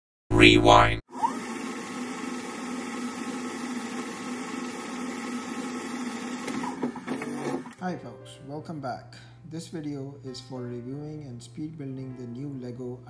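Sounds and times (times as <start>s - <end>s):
mechanical rewind whirring: 1.1s - 7.8s.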